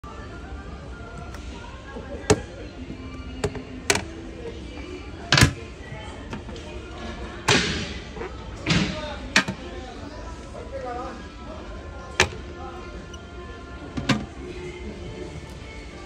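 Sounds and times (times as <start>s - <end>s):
plastic toilet seats clacking: 3.4s - 4.1s, 8.6s - 9.7s, 12.2s - 12.5s, 14.0s - 14.3s.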